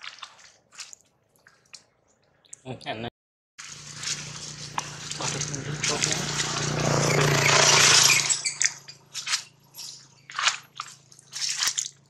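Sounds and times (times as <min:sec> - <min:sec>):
monkey crunching fruit: 0:03.7 - 0:12.0.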